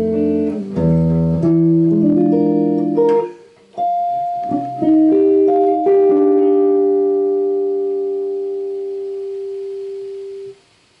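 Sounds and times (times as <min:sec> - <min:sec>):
electric guitar note ringing: 0:00.0 - 0:11.0
faint hiss: 0:00.0 - 0:11.0.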